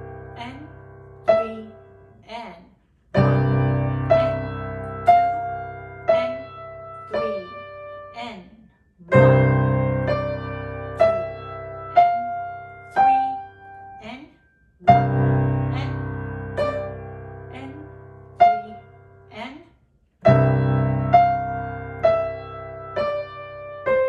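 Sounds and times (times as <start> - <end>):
slow piano melody: 0.0 - 2.2, 3.1 - 8.3, 9.0 - 19.3, 20.2 - 24.0.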